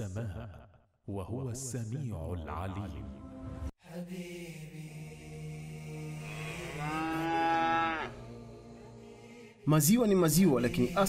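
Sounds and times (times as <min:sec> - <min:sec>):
cow mooing: 0:06.2 - 0:08.2.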